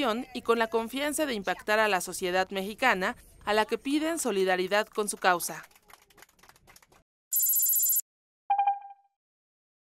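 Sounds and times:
quick pitched beeps: 7.3s - 9.2s.

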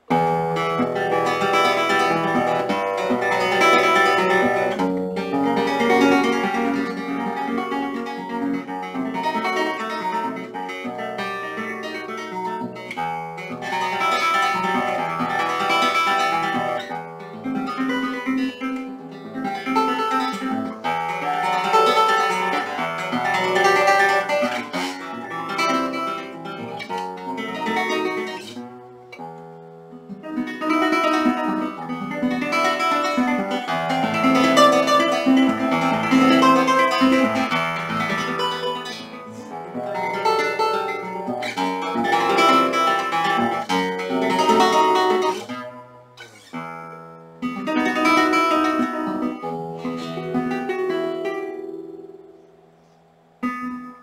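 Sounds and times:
classical guitar arpeggios: 0.0s - 54.0s.

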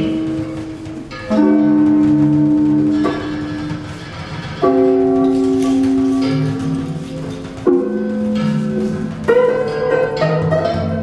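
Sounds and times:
lute: 0.0s - 11.0s
percussion: 0.0s - 11.0s.

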